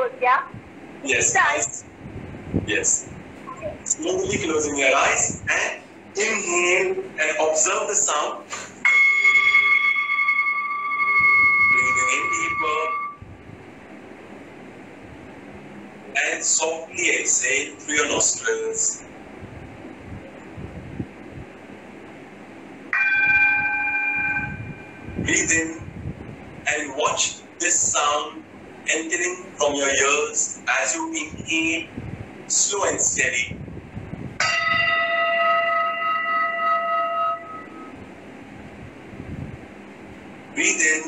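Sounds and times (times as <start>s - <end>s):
singing bowl ringing: 8.8s - 13.2s, 22.9s - 25.3s, 34.4s - 38.0s.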